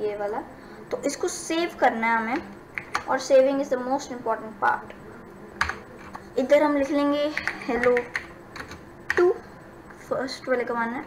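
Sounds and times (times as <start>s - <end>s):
keyboard typing clicks: 7.3s - 9.4s.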